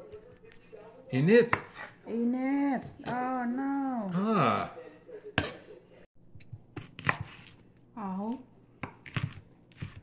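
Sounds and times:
knife chopping on wooden board: 0:06.7 - 0:07.5, 0:08.8 - 0:10.0.

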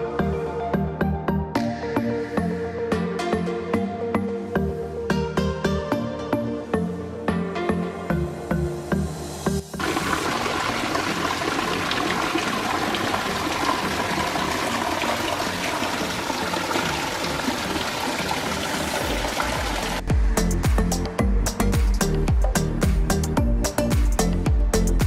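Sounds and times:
background music: 0:00.0 - 0:25.0
waterfall splashing into pool: 0:09.8 - 0:20.0.

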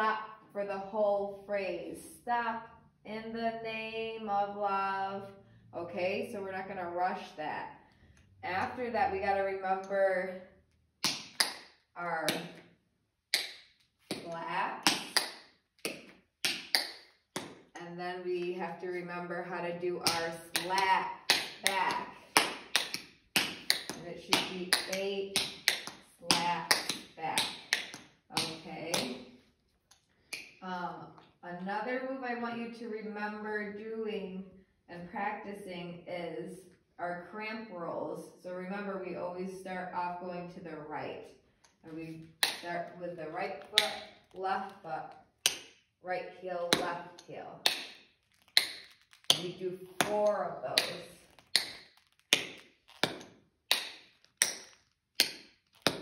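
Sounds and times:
tap shoes striking hard floor: 0:47.6 - 0:56.0.

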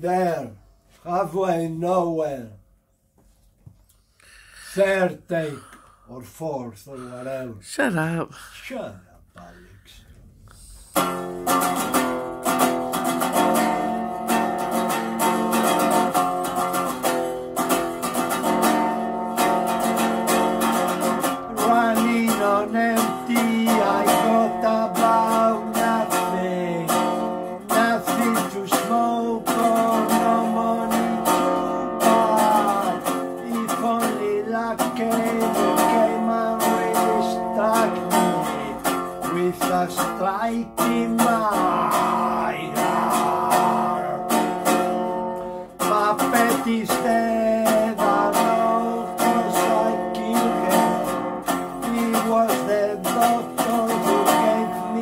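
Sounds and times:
resonator guitar strumming: 0:11.0 - 0:55.0.

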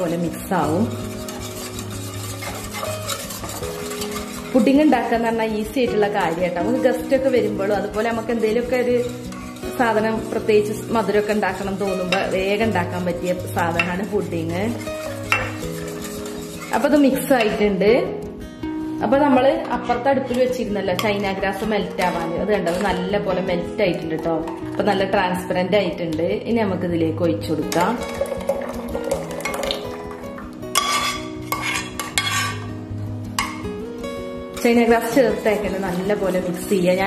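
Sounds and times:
wire whisk stirring in metal pot: 0:00.0 - 0:17.8, 0:19.2 - 0:25.2, 0:27.5 - 0:32.7, 0:33.4 - 0:33.8, 0:34.5 - 0:37.0
background music: 0:00.0 - 0:37.0
whisk clinking against pot: 0:00.1 - 0:17.6, 0:27.7 - 0:32.7, 0:33.4 - 0:33.6, 0:34.6 - 0:37.0
liquid pouring and splashing: 0:27.9 - 0:31.8.

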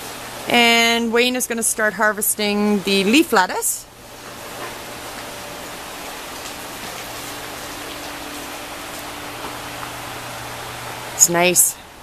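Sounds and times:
fans moving air: 0:00.0 - 0:12.0.

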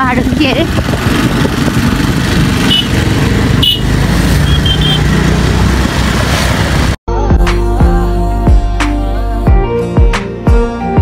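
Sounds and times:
motorcycle engine and wind: 0:00.0 - 0:07.0
background music: 0:07.1 - 0:11.0.

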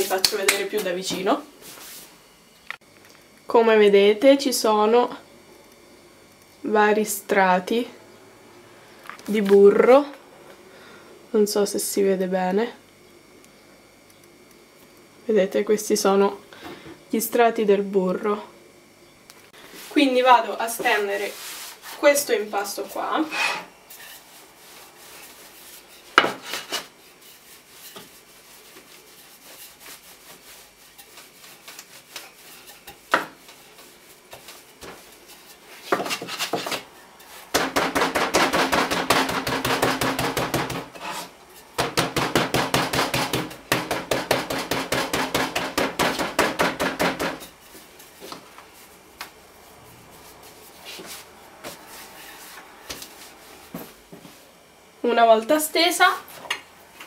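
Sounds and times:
rolling pin rasping on dough: 0:20.8 - 0:49.0
rolling pin knocking worktop: 0:32.9 - 0:33.4, 0:37.5 - 0:41.2, 0:41.8 - 0:47.5.

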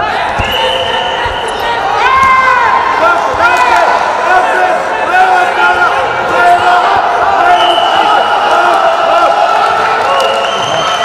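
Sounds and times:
long drawn-out shout: 0:01.8 - 0:10.5.

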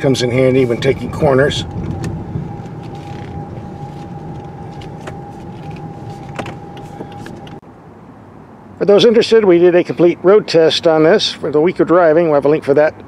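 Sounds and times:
thin steady whine: 0:00.0 - 0:07.6
road noise hum in car: 0:00.0 - 0:13.0.

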